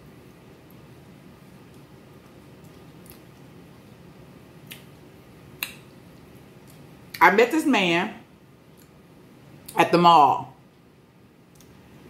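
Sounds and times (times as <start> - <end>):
eating sounds: 1.6 - 3.6.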